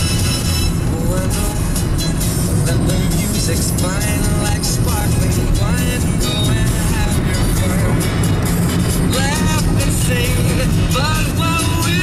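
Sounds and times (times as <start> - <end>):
car running on road: 0.0 - 12.0
song on car radio: 0.0 - 12.0.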